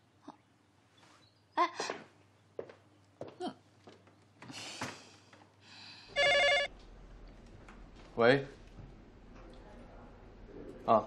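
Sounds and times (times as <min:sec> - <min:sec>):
desk telephone electronic trill: 0:06.2 - 0:06.7.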